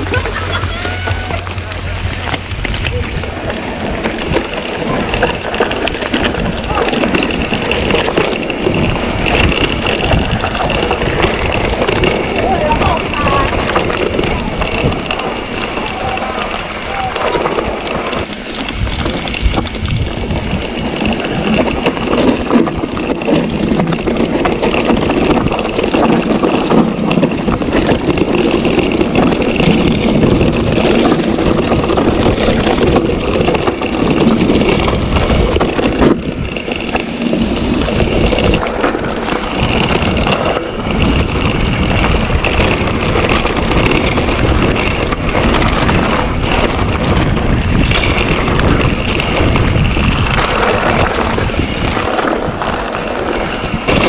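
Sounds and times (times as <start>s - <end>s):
mountain bike rattling over rocks: 0.0s - 54.0s
wind on microphone: 0.0s - 54.0s.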